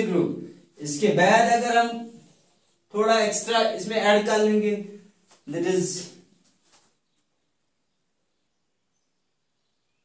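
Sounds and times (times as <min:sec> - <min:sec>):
man's voice: 0:00.0 - 0:02.2, 0:02.9 - 0:06.2.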